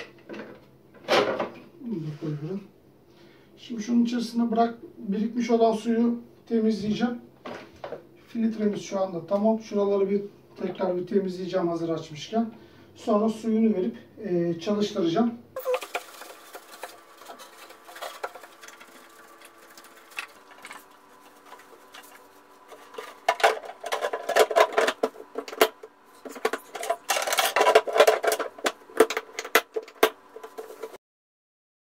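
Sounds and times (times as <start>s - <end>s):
plastic scraping: 15.6s - 31.0s.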